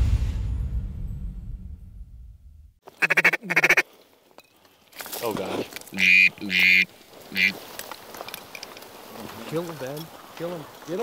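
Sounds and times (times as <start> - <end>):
waterfowl calls blown by hand: 2.9 - 3.8, 5.9 - 7.6.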